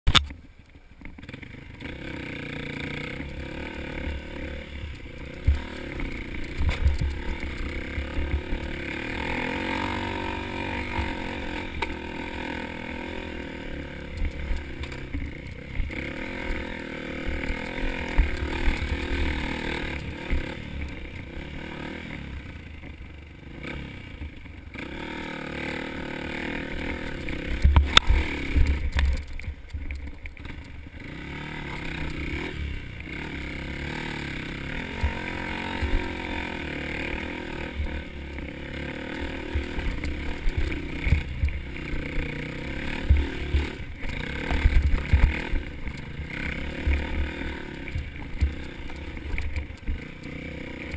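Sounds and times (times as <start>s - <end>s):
dirt bike engine under load: 1.0s - 50.9s
bike knocking over rocks: 5.4s - 8.6s, 42.7s - 50.1s.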